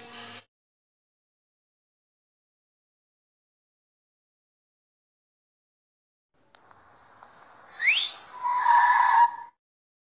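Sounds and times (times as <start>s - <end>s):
quick rising whistle: 7.7s - 9.5s.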